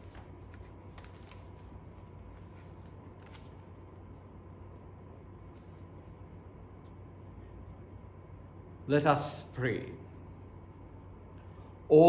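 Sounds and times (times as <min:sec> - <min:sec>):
book pages turning: 0:00.0 - 0:04.5
steady low hum: 0:00.0 - 0:12.0.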